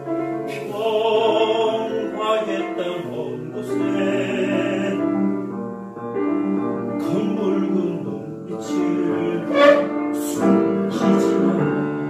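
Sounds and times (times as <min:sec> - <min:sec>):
operatic tenor singing: 0:00.0 - 0:05.2, 0:06.9 - 0:12.0
grand piano: 0:00.0 - 0:12.0.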